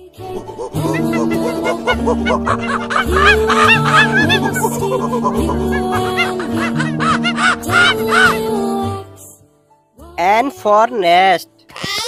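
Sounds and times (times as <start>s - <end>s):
cheerful children's music: 0.0s - 12.0s.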